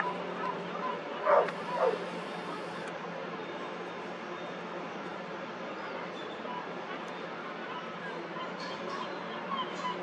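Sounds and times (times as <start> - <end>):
steady low hum: 0.0 - 6.0.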